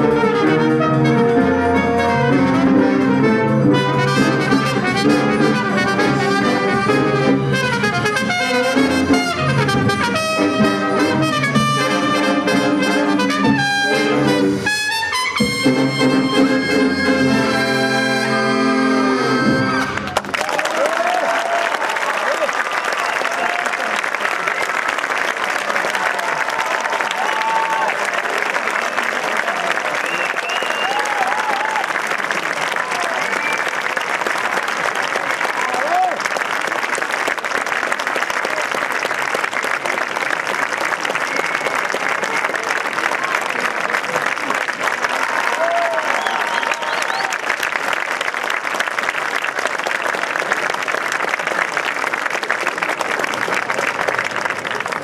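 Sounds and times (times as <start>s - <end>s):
audience applause: 17.2s - 55.0s.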